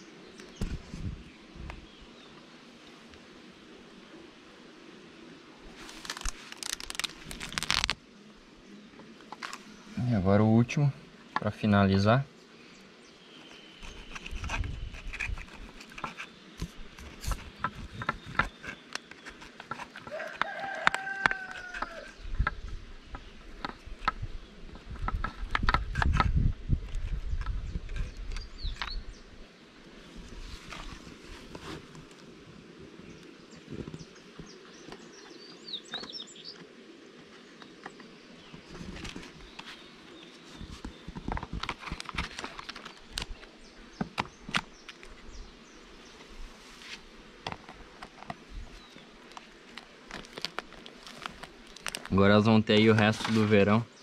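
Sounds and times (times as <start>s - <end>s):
bird calling: 11.9s - 24.0s
knife scraping wooden frame: 13.6s - 22.2s.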